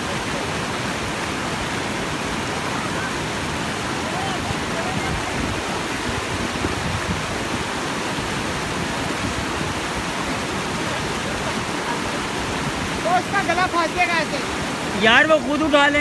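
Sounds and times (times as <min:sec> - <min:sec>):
river rushing over rocks: 0:00.0 - 0:16.0.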